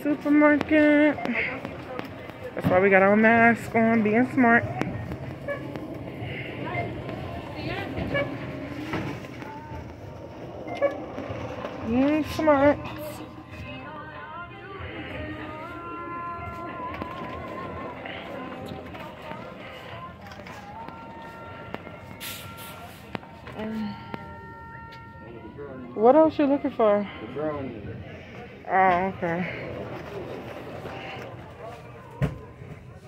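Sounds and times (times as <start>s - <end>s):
steady low rumble: 0.0s - 26.0s
faint indistinct voices: 0.0s - 33.0s.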